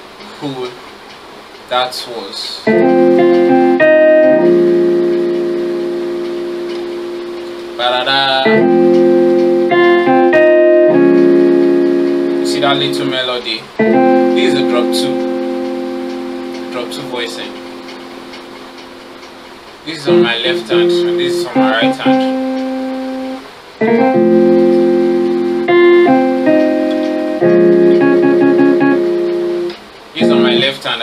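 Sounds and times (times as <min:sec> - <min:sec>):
piano chords: 0:02.6 - 0:31.0
man's voice: 0:30.2 - 0:31.0.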